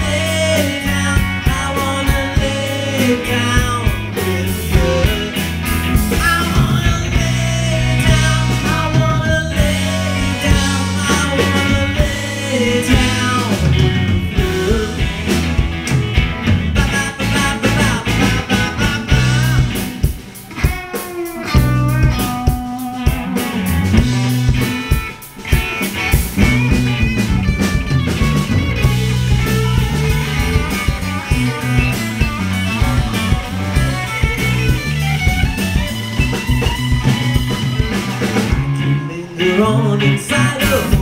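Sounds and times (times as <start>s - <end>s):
drum kit: 0.0s - 41.0s
electric bass: 0.0s - 41.0s
electric guitars: 0.0s - 41.0s.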